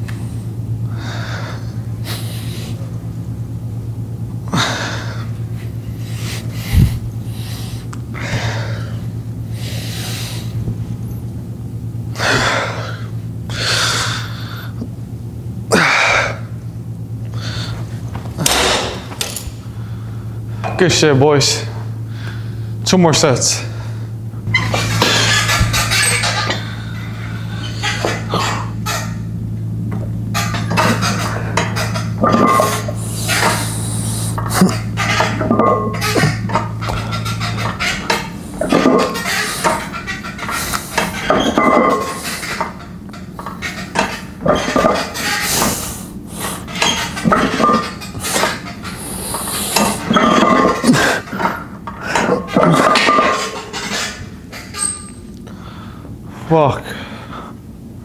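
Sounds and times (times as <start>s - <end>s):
steady low hum: 0.0s - 58.0s
metal gym weights clanking: 24.5s - 29.3s, 30.3s - 45.7s, 46.6s - 49.0s, 49.6s - 55.2s.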